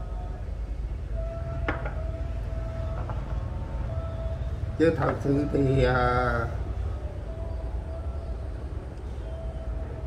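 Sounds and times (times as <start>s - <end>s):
faint hum: 0.0s - 10.0s
low background rumble: 0.0s - 10.0s.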